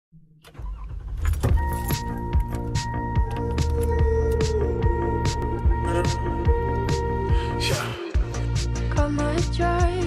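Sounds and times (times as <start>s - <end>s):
car engine starting and running: 0.4s - 8.5s
keys jangling: 1.2s - 4.6s
steady high tone: 1.7s - 8.2s
music beat: 1.8s - 10.0s.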